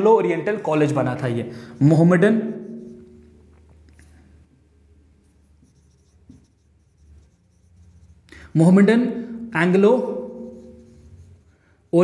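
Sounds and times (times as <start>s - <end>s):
marker pen scratching on whiteboard: 1.8s - 3.6s, 5.2s - 8.3s, 9.9s - 12.0s.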